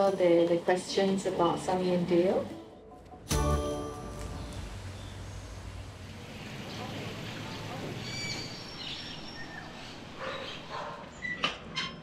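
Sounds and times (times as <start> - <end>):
steady background hiss: 3.4 - 10.2
bird chirps: 6.3 - 10.6.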